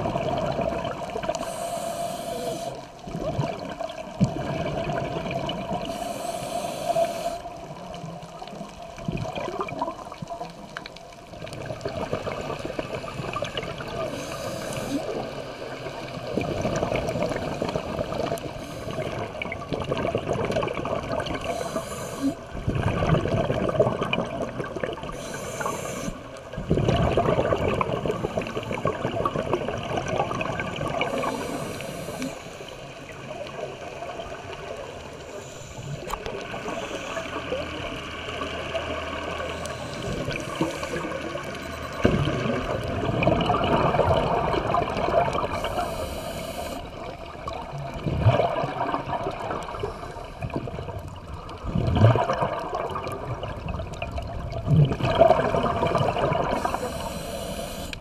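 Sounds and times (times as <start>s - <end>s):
underwater air bubbles gurgling: 0.0s - 58.0s
regulator hissing: 56.6s - 58.0s.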